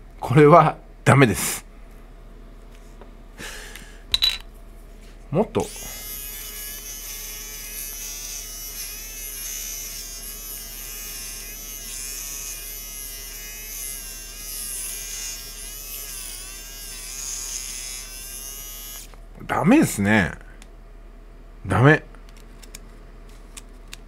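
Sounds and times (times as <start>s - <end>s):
electric shaver buzzing: 5.6s - 19.2s.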